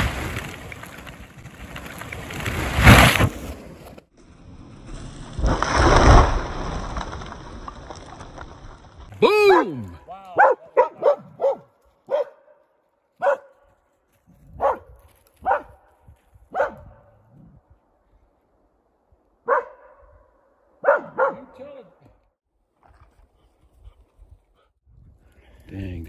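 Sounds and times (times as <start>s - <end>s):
dog barking with echo: 10.4s - 12.6s, 13.2s - 13.5s, 14.6s - 15.8s, 16.5s - 17.1s, 19.4s - 21.6s.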